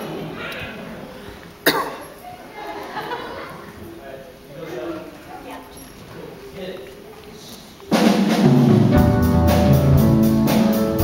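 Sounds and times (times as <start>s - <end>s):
sharp cough: 1.6s - 2.2s.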